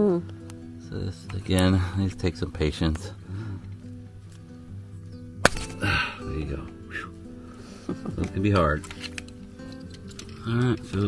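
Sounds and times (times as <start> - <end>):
background music: 0.0 - 11.0
plastic connector snapping apart: 8.2 - 11.0.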